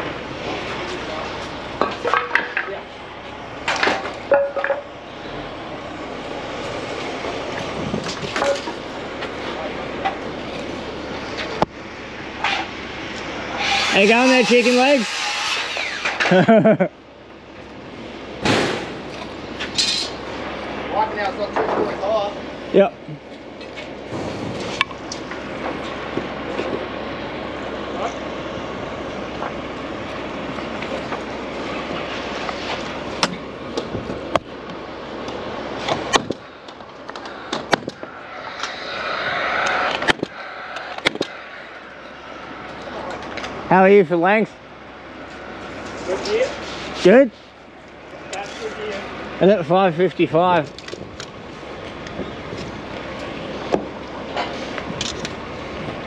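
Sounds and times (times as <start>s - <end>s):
steady hiss: 13.2s - 16.5s, 35.6s - 44.1s.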